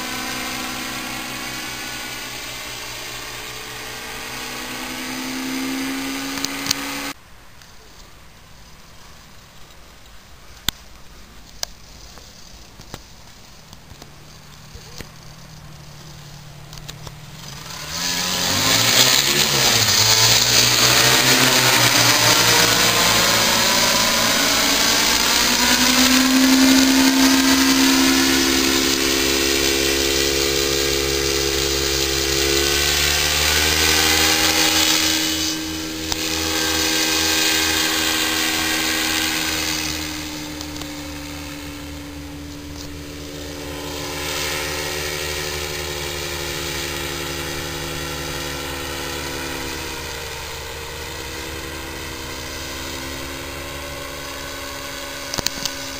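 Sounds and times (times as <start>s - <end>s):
paramotor engine buzzing overhead: 0.0s - 7.2s, 11.4s - 55.9s.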